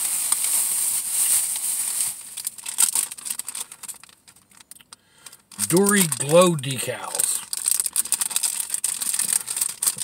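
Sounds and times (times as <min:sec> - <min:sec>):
plastic bag rustling and crinkling: 0:00.0 - 0:10.0.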